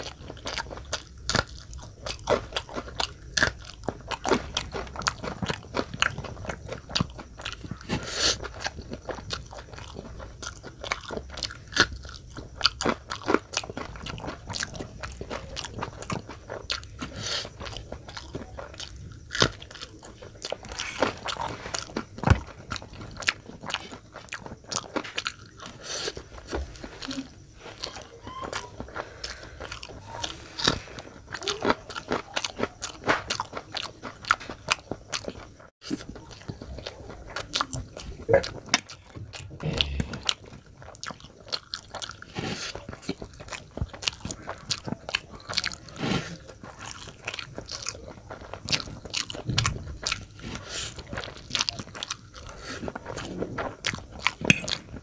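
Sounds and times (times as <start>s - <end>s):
crunching chillies: 0.0s - 55.0s
person chewing noodles: 0.0s - 55.0s.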